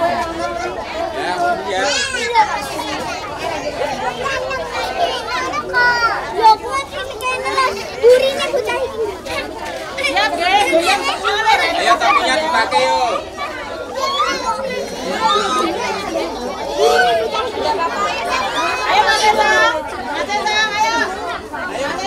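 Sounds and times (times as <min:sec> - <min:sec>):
young children chattering: 0:00.0 - 0:22.0.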